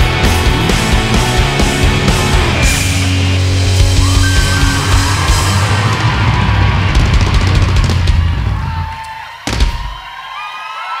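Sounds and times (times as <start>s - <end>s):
live rock band final chord: 0.0s - 8.5s
crowd cheering and whistling: 2.3s - 11.0s.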